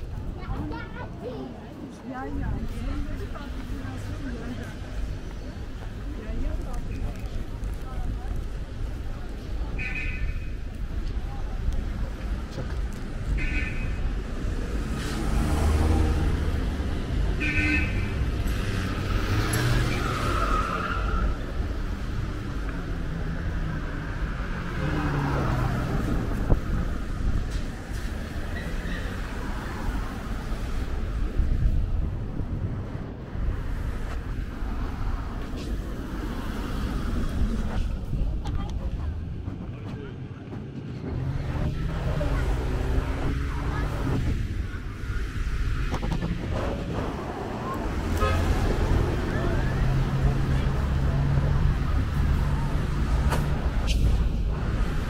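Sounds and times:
car engine and tyre noise: 0:01.8 - 0:55.0
car traffic passing: 0:02.1 - 0:55.0.

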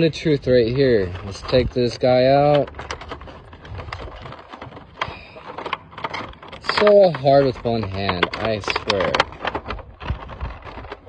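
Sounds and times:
cardboard and plastic packaging handled: 0:00.0 - 0:11.0.

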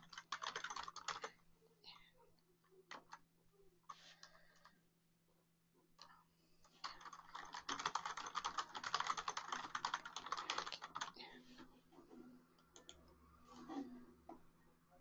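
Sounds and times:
typing on computer keyboard: 0:00.0 - 0:01.4, 0:06.8 - 0:11.2.

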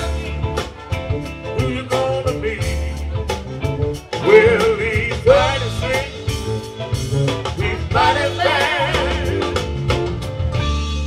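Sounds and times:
bass guitar: 0:00.0 - 0:11.0
drum kit: 0:00.0 - 0:11.0
electric guitars: 0:00.0 - 0:11.0.

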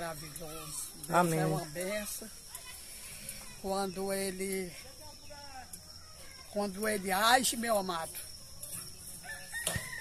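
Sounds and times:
rooster crowing: 0:09.2 - 0:10.0.

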